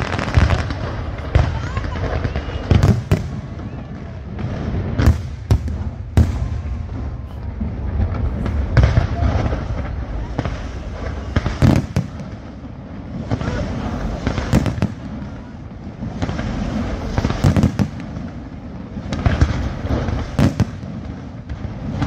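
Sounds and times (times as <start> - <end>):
fireworks crackle and hiss: 0.0 - 22.0.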